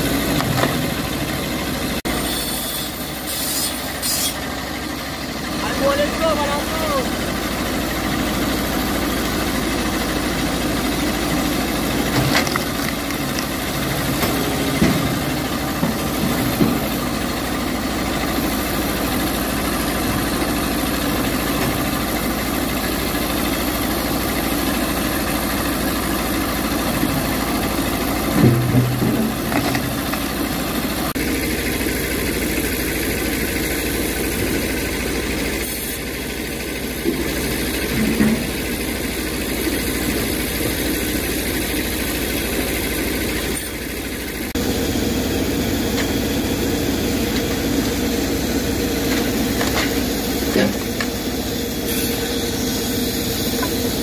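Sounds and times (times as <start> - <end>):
tractor engine running: 0.0 - 54.0
knocks of logs being handled: 12.0 - 17.0, 28.3 - 30.3, 49.0 - 51.2.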